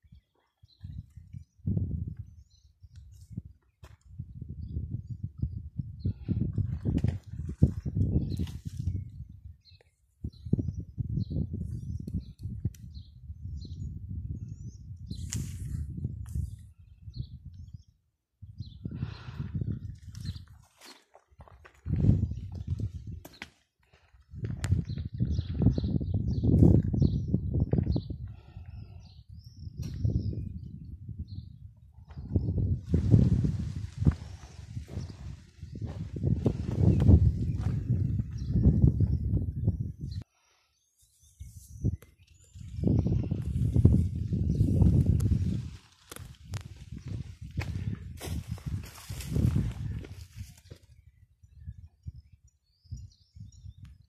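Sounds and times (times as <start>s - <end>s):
footsteps on stony dirt: 20.3s - 25.8s, 34.0s - 38.5s, 47.6s - 50.8s.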